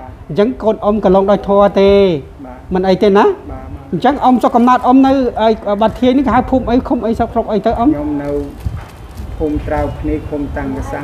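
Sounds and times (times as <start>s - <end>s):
person talking: 0.0s - 8.6s.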